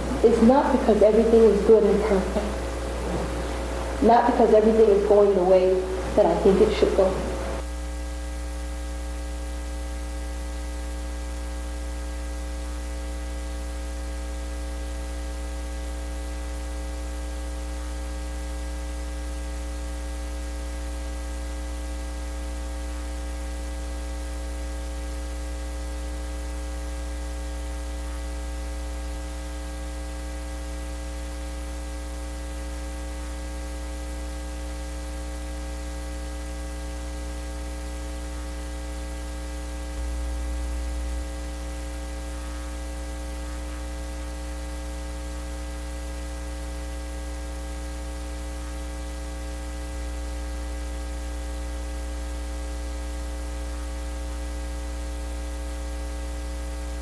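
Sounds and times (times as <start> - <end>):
electrical mains hum: 0.0 - 57.0.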